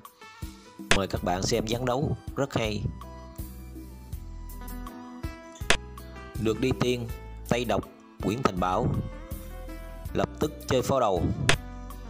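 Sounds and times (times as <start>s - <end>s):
plucked guitar music: 0.9s - 12.0s.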